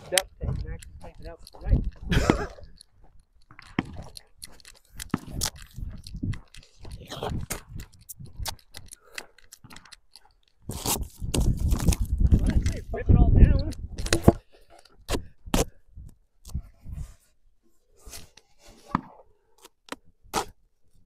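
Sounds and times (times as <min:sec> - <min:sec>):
footsteps crunching on gravel: 0:00.0 - 0:08.8.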